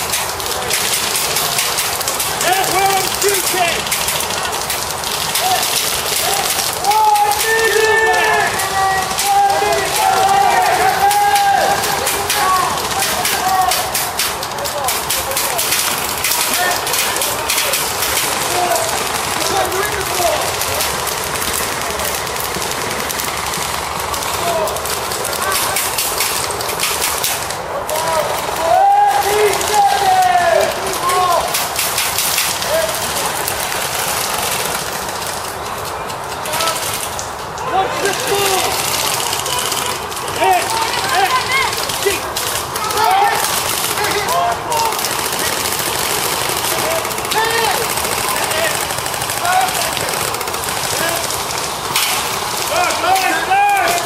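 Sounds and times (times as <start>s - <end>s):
airsoft guns firing: 0.0s - 35.8s, 37.9s - 54.0s
players shouting: 0.0s - 54.0s
steady rushing noise: 0.0s - 54.0s.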